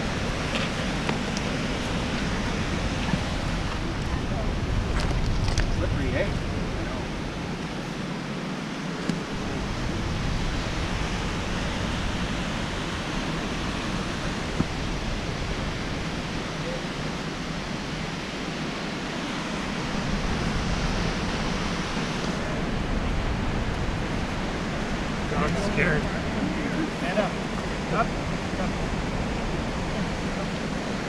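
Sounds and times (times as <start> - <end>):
creek water rushing: 0.0 - 31.0.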